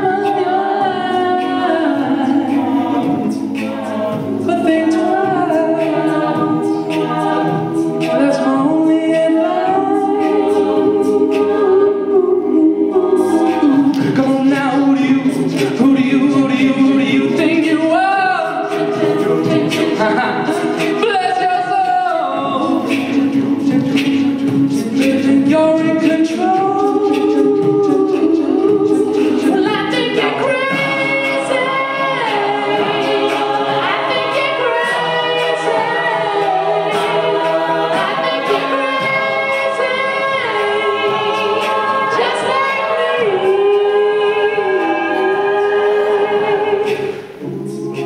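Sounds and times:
backing voices singing chords: 0.0 - 48.0
vocal percussion beat: 0.0 - 48.0.

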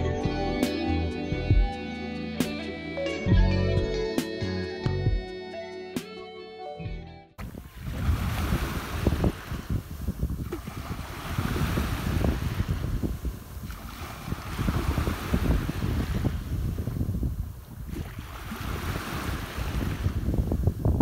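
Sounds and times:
small waves washing on sand: 7.4 - 20.8
wind buffeting microphone: 7.4 - 21.0.

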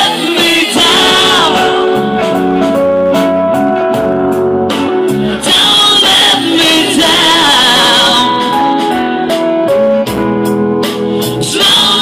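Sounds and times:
person singing: 0.0 - 4.0, 5.0 - 9.4, 11.2 - 12.0
guitar strumming chords: 0.7 - 11.2.

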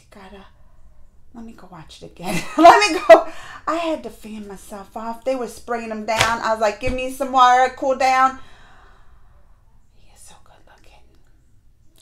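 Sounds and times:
woman whispering softly: 9.9 - 11.4.

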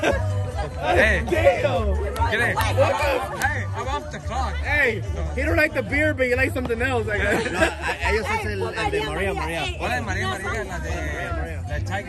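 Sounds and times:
music with pulsing bass: 0.0 - 12.0
voices chattering and calling out: 0.0 - 12.0.

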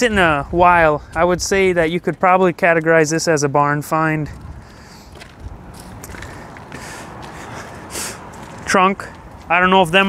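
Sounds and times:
footsteps on gravel: 0.2 - 10.0.

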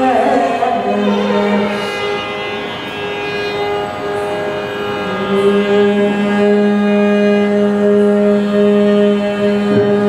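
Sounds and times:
violin playing held notes: 0.0 - 10.0.

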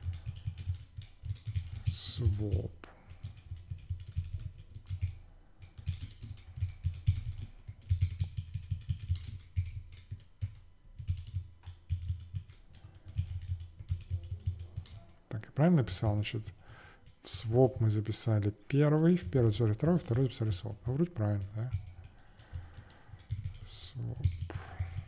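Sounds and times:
typing on computer keyboard: 0.0 - 15.2, 15.8 - 18.1, 19.0 - 25.0.

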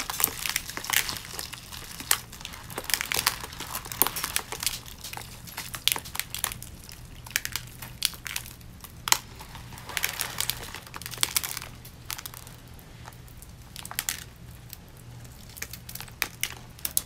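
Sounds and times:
rhinestones crinkling and clicking: 0.0 - 17.0.

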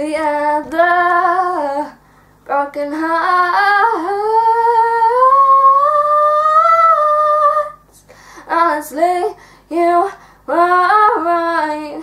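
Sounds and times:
girl singing unaccompanied: 0.0 - 12.0.

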